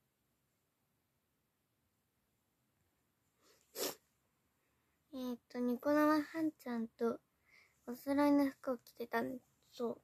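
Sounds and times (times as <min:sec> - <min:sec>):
faint breath: 0:07.4 - 0:07.9.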